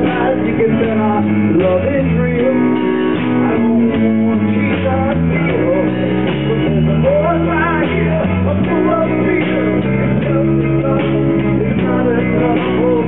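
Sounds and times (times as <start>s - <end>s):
acoustic guitars: 0.0s - 13.0s
bass line low notes: 0.0s - 13.0s
live rock band playing: 0.0s - 13.0s.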